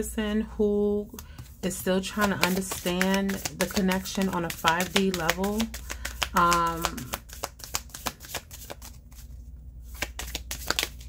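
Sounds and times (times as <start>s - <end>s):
cards being shuffled: 1.2s - 11.0s.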